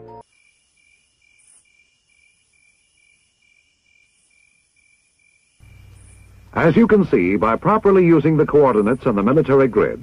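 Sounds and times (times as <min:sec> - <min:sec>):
faint high chirp: 0:00.8 - 0:06.5.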